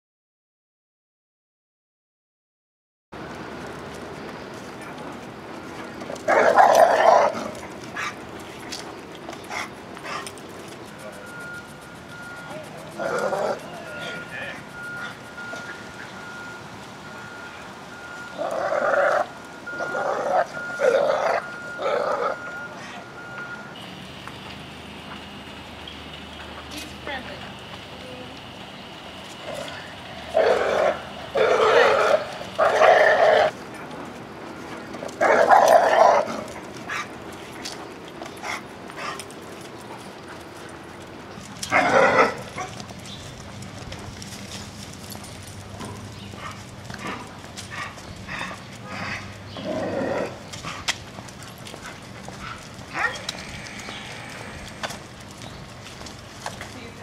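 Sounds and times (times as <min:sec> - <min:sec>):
dog barking aggressively: 0:06.2 - 0:08.2, 0:09.5 - 0:10.2, 0:30.3 - 0:33.5, 0:35.2 - 0:37.1, 0:41.7 - 0:42.8, 0:52.4 - 0:53.4
dog barking: 0:06.3 - 0:08.2, 0:52.4 - 0:53.3.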